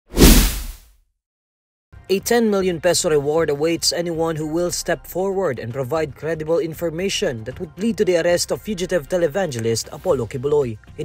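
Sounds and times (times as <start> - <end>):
swoosh: 0.1 - 0.8
low boom: 0.2 - 0.8.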